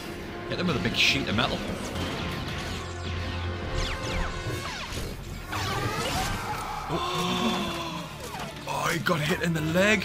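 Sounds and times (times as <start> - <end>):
battle soundtrack music: 0.0 - 10.0
blaster fire effects: 1.9 - 6.6.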